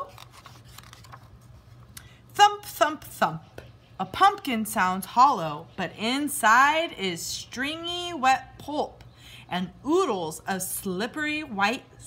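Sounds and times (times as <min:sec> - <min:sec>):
page rustling: 0:00.0 - 0:01.9.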